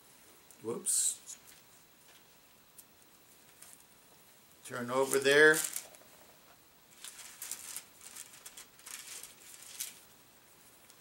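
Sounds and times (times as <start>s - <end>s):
pages being leafed through: 4.9s - 6.0s, 6.9s - 10.1s.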